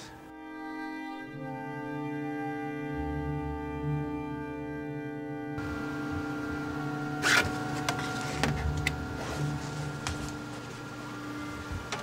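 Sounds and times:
engraving machine motor hum: 0:05.6 - 0:12.0.

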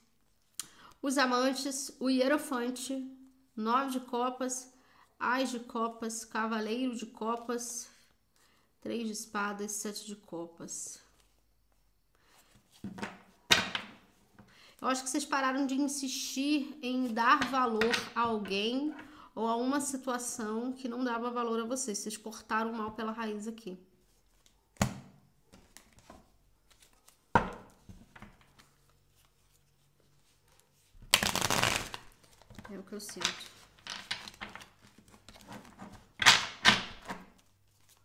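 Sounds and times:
cards shuffling: 0:25.5 - 0:29.9, 0:30.6 - 0:38.0
cards clacking: 0:31.0 - 0:35.5.

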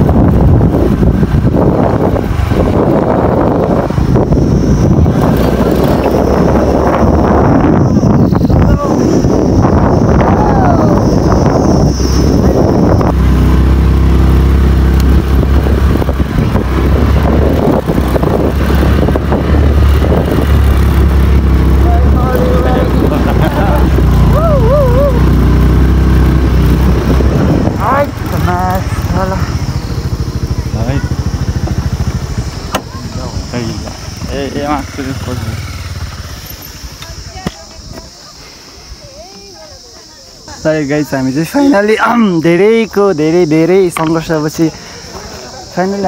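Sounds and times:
motorcycle engine running: 0:00.0 - 0:39.6
voices: 0:00.3 - 0:46.0.

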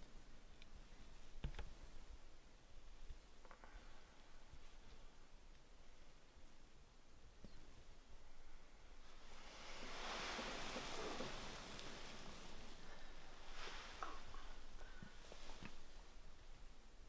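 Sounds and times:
fabric rustling: 0:09.0 - 0:16.4.

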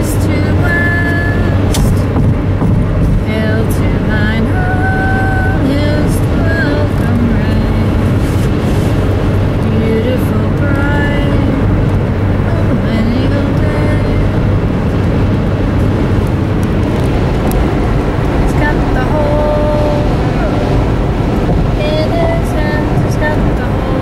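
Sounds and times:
car cabin road noise: 0:00.0 - 0:24.0
person singing: 0:03.3 - 0:08.1, 0:18.5 - 0:20.8, 0:21.8 - 0:24.0.

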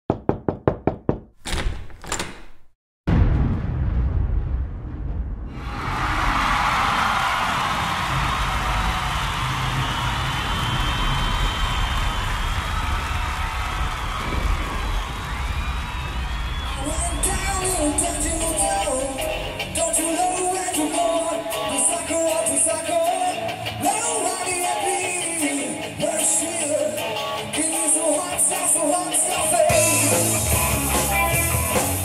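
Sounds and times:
blues-rock band playing: 0:18.7 - 0:32.0.

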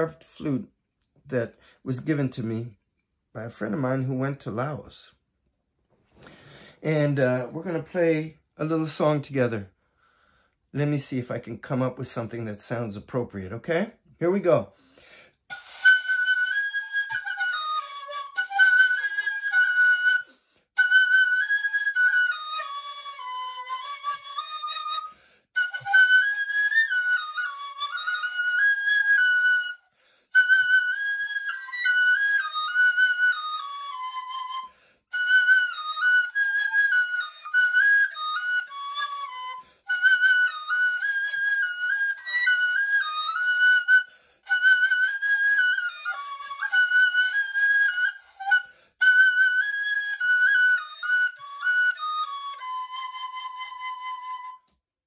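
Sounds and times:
flute melody: 0:15.5 - 0:54.9.

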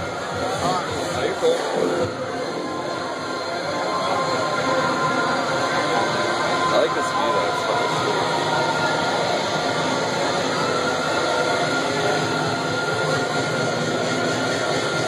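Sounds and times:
club dance music: 0:00.0 - 0:15.0
crowd voices: 0:00.0 - 0:15.0.

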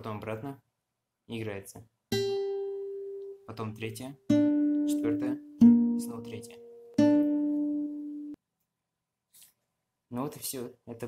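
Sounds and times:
fingerpicked acoustic guitar chord: 0:04.3 - 0:08.4.

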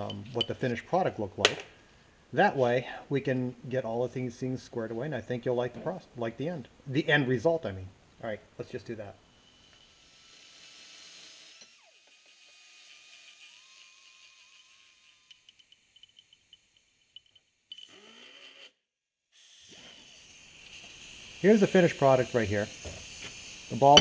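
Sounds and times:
small metal parts clicking: 0:14.3 - 0:18.0.

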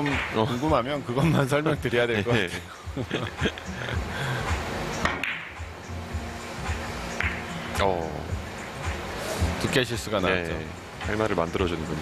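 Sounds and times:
billiard balls clicking: 0:05.0 - 0:05.6
cue striking billiard ball: 0:05.0 - 0:05.6, 0:06.7 - 0:07.5.

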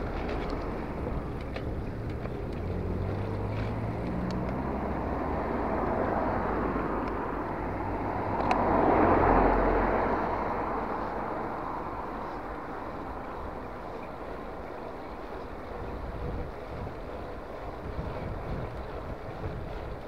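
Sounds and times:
cars driving past: 0:00.0 - 0:16.9
steady engine hum: 0:00.0 - 0:20.0.

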